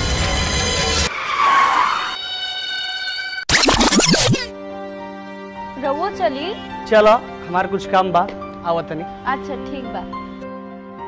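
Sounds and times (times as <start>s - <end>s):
tyres skidding screech: 0.3s - 4.5s.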